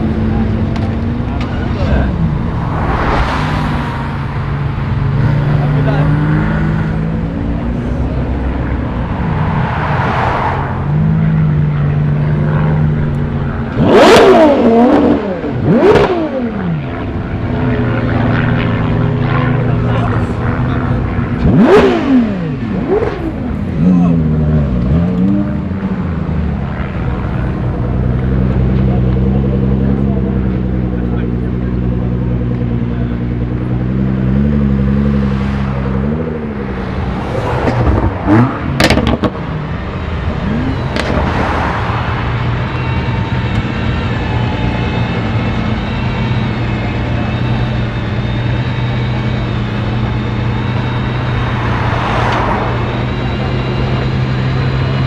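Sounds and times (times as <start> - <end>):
sports car engines running: 0.0 - 55.0
sharp engine throttle blips: 32.4 - 55.0.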